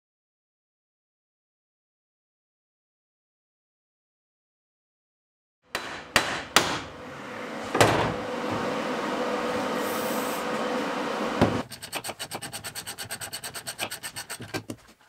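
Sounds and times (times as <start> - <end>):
sharp metal knocks: 5.7 - 6.9.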